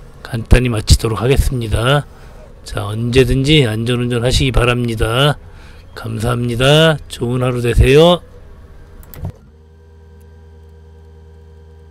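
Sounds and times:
faint high whine: 0:00.0 - 0:11.8
steady machine hum: 0:00.0 - 0:11.9.

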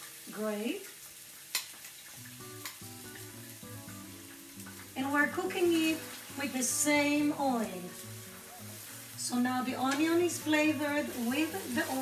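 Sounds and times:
onion sizzling in hot oil: 0:00.0 - 0:12.0
soft background music: 0:02.2 - 0:12.0.

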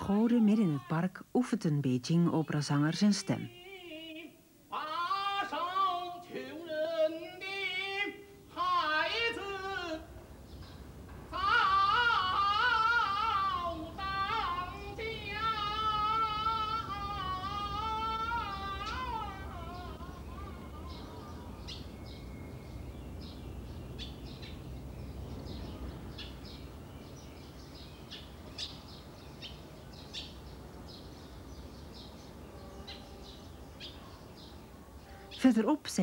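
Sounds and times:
opera singer high wavering voice: 0:00.0 - 0:07.3, 0:11.4 - 0:21.7
birds chirping: 0:08.6 - 0:36.0.

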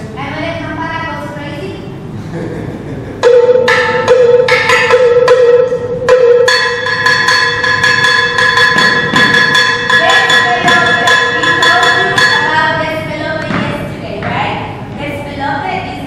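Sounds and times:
cowbell struck in a quick beat: 0:03.2 - 0:12.4
salsa music: 0:03.2 - 0:13.3.

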